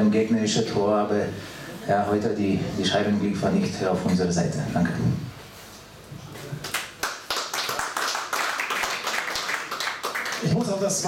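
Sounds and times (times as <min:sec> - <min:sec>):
people clapping: 0:06.6 - 0:11.0.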